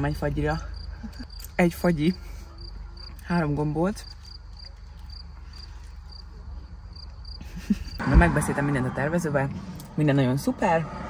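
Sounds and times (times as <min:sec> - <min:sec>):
cricket chirping: 0:00.0 - 0:09.9.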